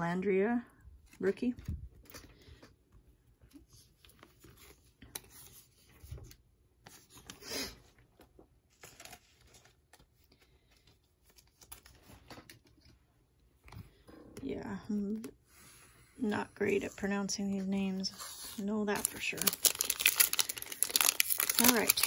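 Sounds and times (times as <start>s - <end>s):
card rustles: 17.8s - 22.0s.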